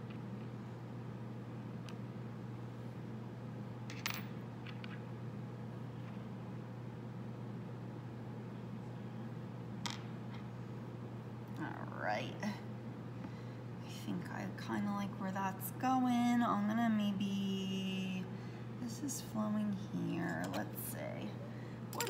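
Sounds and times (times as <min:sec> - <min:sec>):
fan hum: 0:00.0 - 0:22.0.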